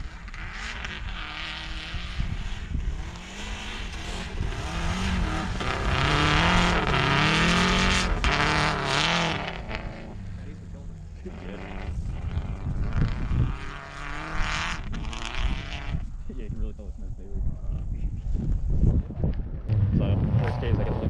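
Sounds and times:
distant car engine revving: 0.0s - 16.2s, 19.4s - 21.0s
low wind rumble on microphone: 0.0s - 21.0s.

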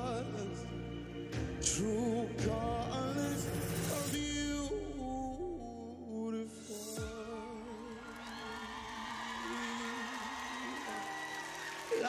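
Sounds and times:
man singing with vibrato: 0.0s - 0.7s, 1.6s - 11.1s
soft band backing: 0.0s - 9.8s
audience cheering and whooping: 7.7s - 12.0s.

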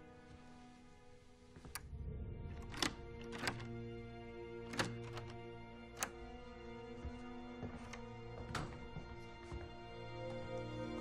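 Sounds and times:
droning music: 0.0s - 11.0s
key turning in door lock: 2.5s - 3.9s, 4.6s - 6.5s.

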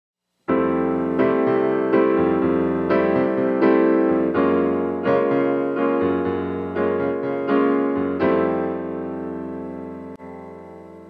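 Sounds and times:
bossa nova piano: 0.5s - 11.0s.

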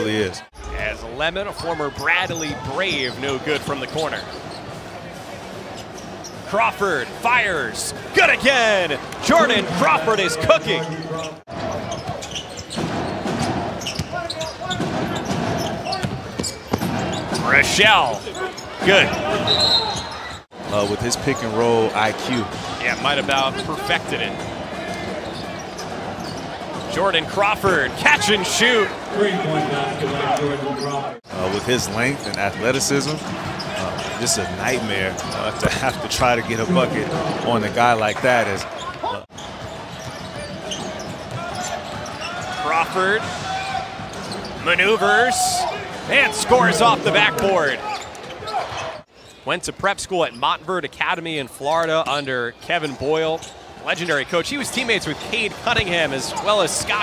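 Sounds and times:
low crowd murmur: 0.0s - 6.6s
arena crowd voices: 0.0s - 57.0s.

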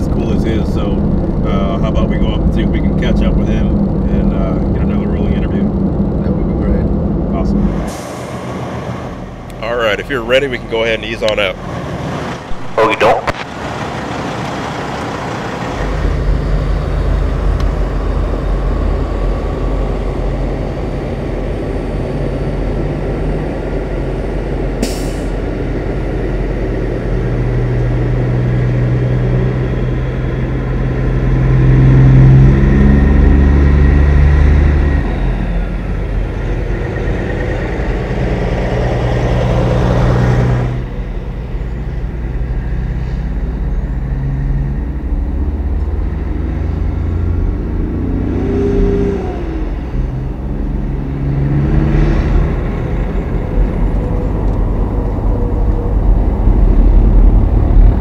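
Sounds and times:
diesel truck engine accelerating: 0.0s - 58.0s.

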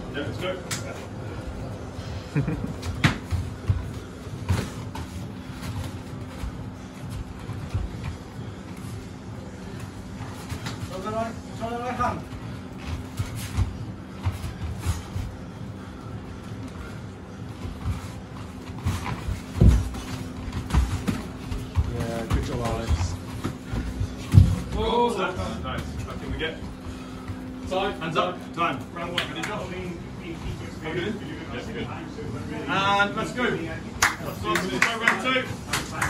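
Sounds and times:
feet shuffling on foam mats: 2.5s - 29.0s.

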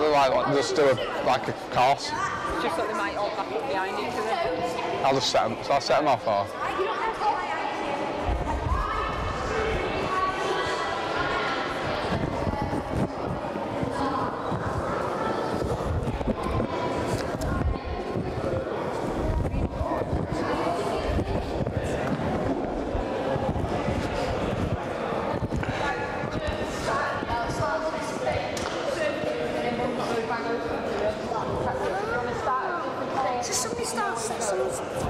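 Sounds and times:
children chattering: 0.0s - 35.0s.

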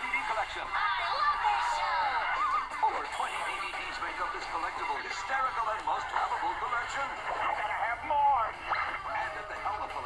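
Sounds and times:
commercial music: 0.0s - 10.0s.

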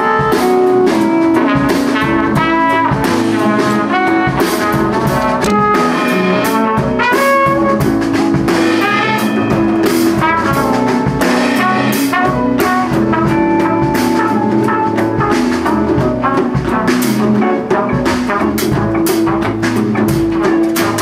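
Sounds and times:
drum kit and cymbals: 0.0s - 21.0s
trumpet melody: 0.0s - 21.0s.

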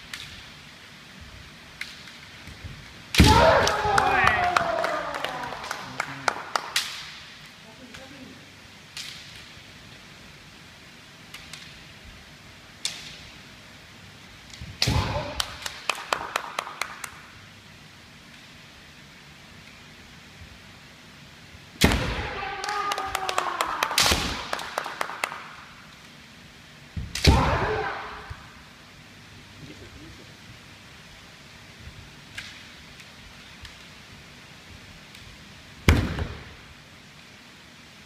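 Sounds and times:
people shouting: 3.2s - 5.8s, 22.2s - 24.0s, 27.2s - 28.3s
bamboo swords clacking: 8.9s - 9.7s, 12.7s - 13.5s.

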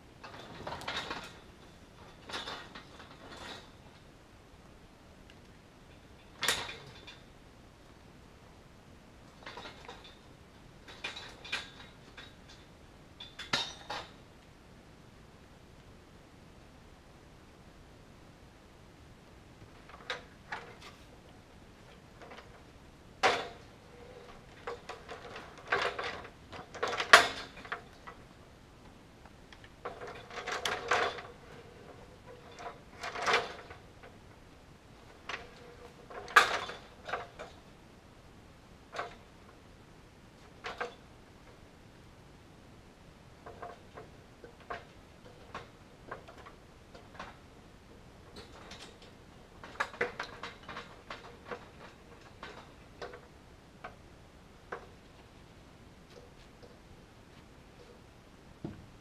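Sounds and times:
ladder knocking and rattling: 23.2s - 28.2s, 29.8s - 34.2s, 35.0s - 37.6s, 43.4s - 54.0s, 58.6s - 59.0s
wood knocking on wooden post: 58.6s - 58.9s.

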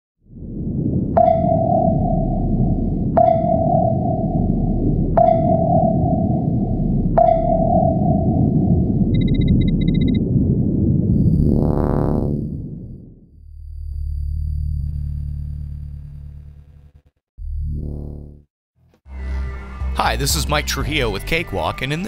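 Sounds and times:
low rumbling drone: 0.2s - 18.5s
sonar-like pings: 1.1s - 10.2s
short high electronic beeps: 9.2s - 10.2s.

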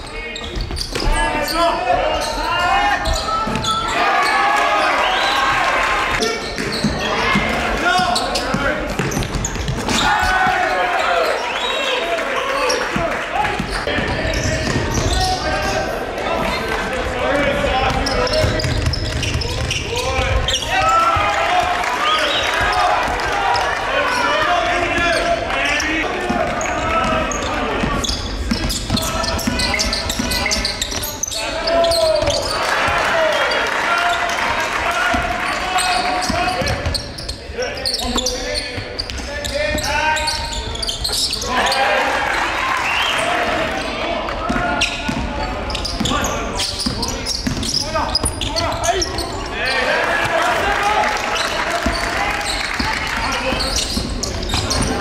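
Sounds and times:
people calling out: 1.0s - 38.8s.

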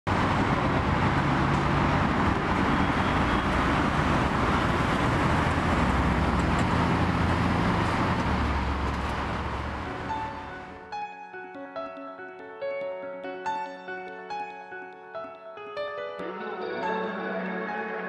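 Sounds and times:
road and traffic noise: 0.1s - 10.8s.

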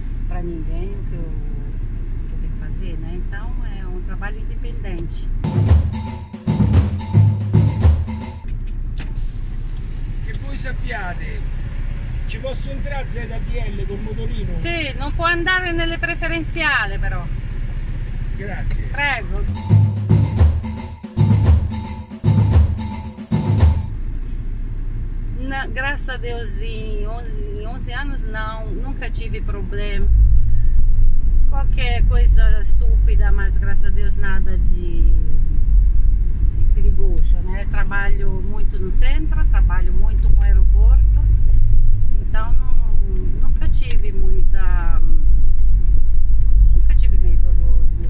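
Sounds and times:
car engine and road rumble: 0.0s - 48.0s
music with percussion: 5.4s - 8.5s, 19.5s - 23.9s.

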